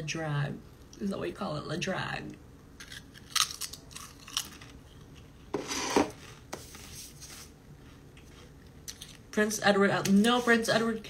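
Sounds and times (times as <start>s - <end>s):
crunching potato crisp: 2.8s - 5.2s.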